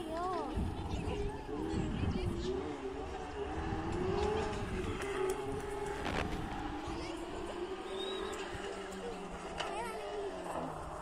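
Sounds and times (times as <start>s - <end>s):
distant rally car engine: 0.0s - 11.0s
engine crackle: 3.1s - 11.0s.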